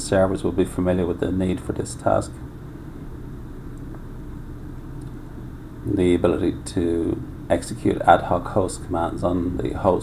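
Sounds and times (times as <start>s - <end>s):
man talking: 0.0s - 2.4s, 5.8s - 10.0s
low room rumble: 0.0s - 10.0s.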